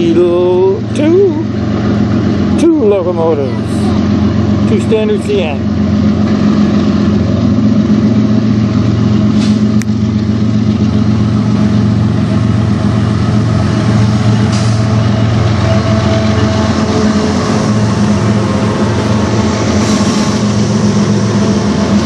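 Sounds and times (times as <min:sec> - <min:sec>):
diesel locomotives engine drone: 0:00.0 - 0:22.0.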